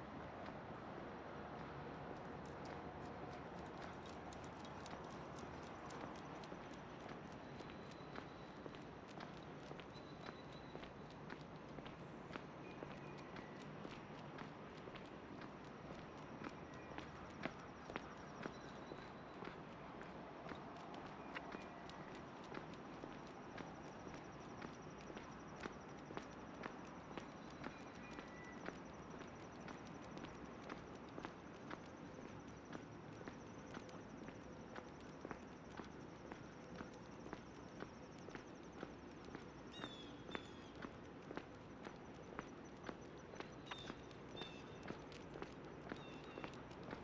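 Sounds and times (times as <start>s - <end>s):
footsteps on asphalt: 1.5s - 47.0s.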